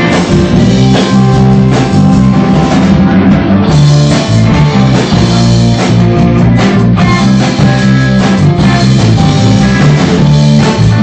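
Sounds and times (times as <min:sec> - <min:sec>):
bass guitar: 0:00.0 - 0:11.0
drum kit steady beat: 0:00.0 - 0:11.0
electric guitars: 0:00.0 - 0:11.0.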